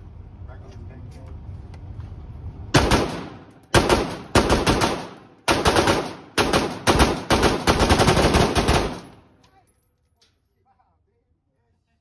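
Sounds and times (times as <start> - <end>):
rifle firing rapid shots: 2.8 - 9.3.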